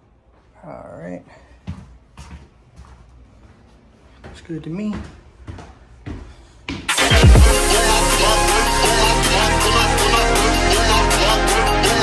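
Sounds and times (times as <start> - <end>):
soft footsteps on stairs: 0.0 - 6.9
electronic music: 6.9 - 12.0.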